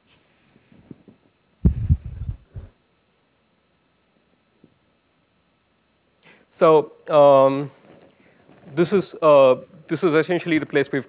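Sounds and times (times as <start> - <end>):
low dull thumps and rumble: 1.6 - 2.7.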